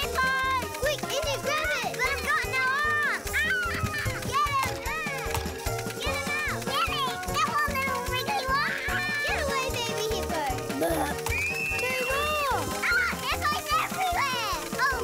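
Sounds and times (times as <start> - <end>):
cartoon children's voices: 0.0 - 5.3, 5.9 - 11.2, 11.8 - 15.0
light background music: 0.0 - 15.0.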